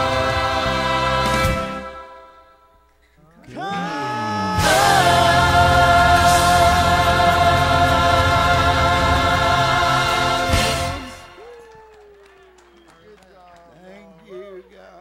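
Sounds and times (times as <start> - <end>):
choir and band final chord: 0.0 - 2.6, 4.6 - 11.4.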